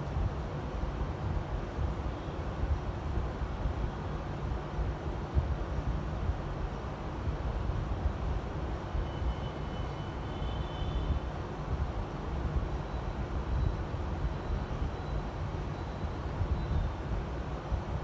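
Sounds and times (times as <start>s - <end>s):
low rumbling background noise: 0.0s - 18.0s.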